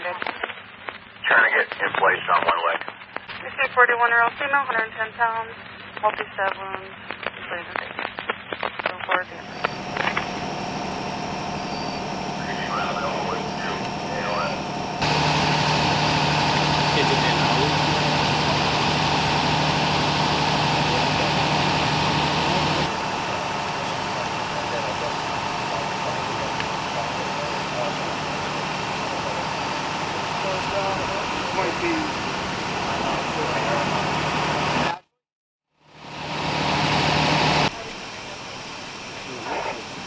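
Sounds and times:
faint voices: 0:09.0 - 0:35.0
vehicle engine idling: 0:09.3 - 0:35.0, 0:35.9 - 0:40.0.

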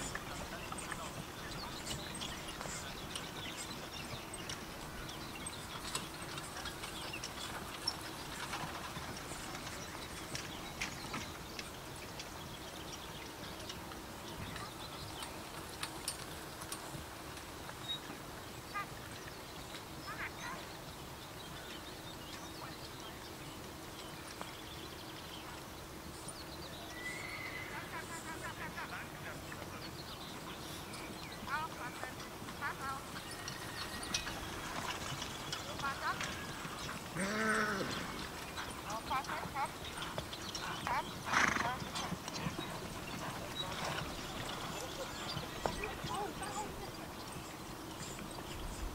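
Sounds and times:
faint outdoor ambience: 0:00.0 - 0:48.9
pony hooves trotting on grass: 0:00.0 - 0:48.9
horse whinnying: 0:26.9 - 0:28.0, 0:33.2 - 0:34.6, 0:36.2 - 0:38.4, 0:40.8 - 0:42.1
person calling to horse: 0:37.2 - 0:37.9.

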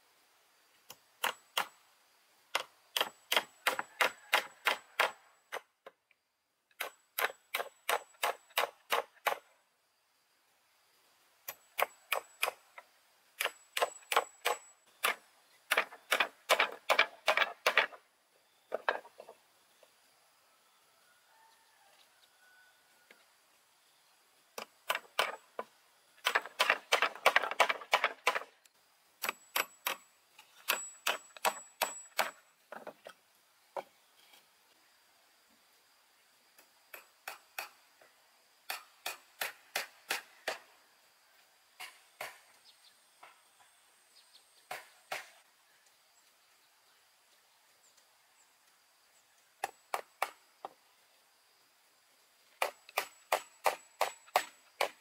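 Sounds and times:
hammer driving nails into wood: 0:02.6 - 0:05.7, 0:06.8 - 0:09.4, 0:13.4 - 0:18.0, 0:26.2 - 0:28.5, 0:30.6 - 0:32.4.

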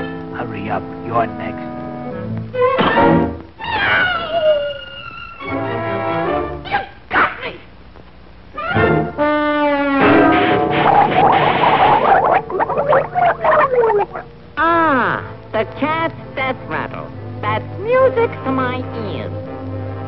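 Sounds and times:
animal cries: 0:03.6 - 0:05.4
cartoon orchestral music with brass: 0:05.4 - 0:06.7, 0:08.6 - 0:14.2.

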